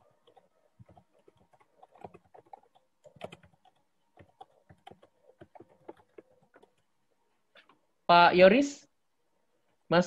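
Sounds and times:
typing on computer keyboard: 0.0 - 6.9.

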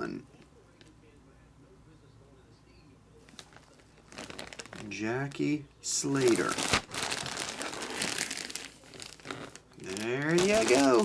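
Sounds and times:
plastic bag crinkling: 3.3 - 5.4, 6.1 - 11.0.

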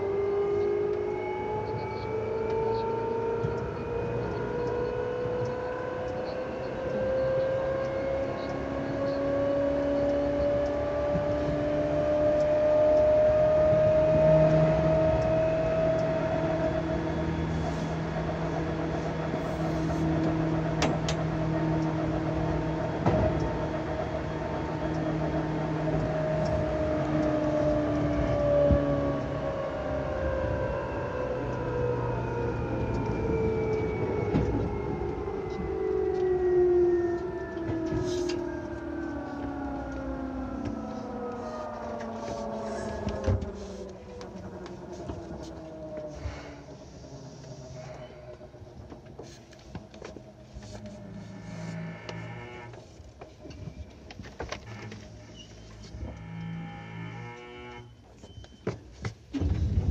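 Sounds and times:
train motor whine: 0.0 - 59.9
train wheel rumble: 0.0 - 59.9.

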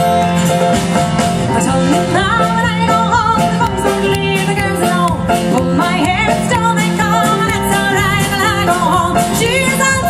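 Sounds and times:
live band playing country-folk: 0.0 - 10.0.

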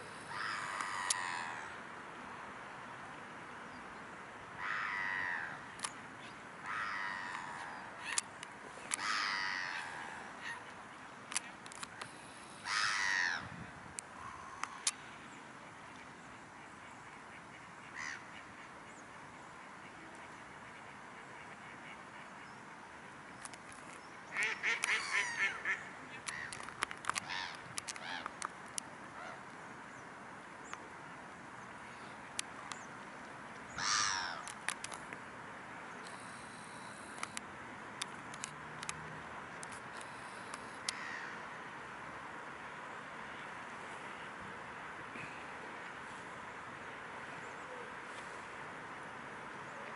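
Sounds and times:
outdoor background noise: 0.0 - 49.9
steady low background hiss: 0.0 - 49.9.

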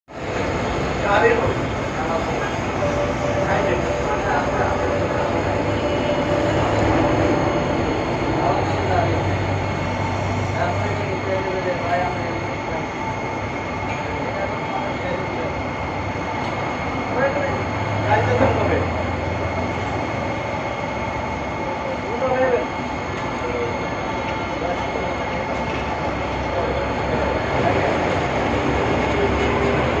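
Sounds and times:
aquarium aeration rushing: 0.1 - 25.5
faint voices: 0.2 - 30.0.

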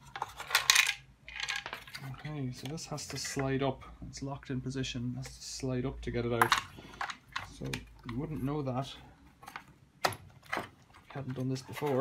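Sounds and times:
plastic parts clicking: 0.0 - 3.4, 6.4 - 8.5.

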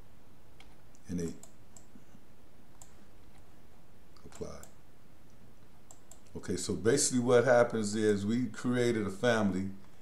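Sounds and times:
mouse and keyboard clicks: 2.8 - 3.5, 4.2 - 4.8, 5.9 - 6.4.

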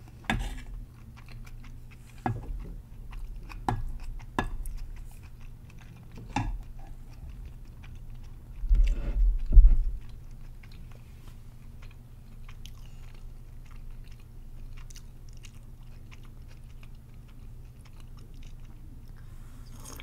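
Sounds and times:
chewing with mouth closed: 0.0 - 20.0.

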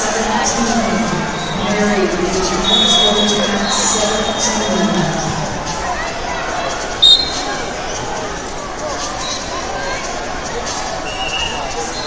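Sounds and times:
crowd chatter: 0.0 - 12.0
referee's whistle blast: 2.6 - 4.6, 7.0 - 7.5.

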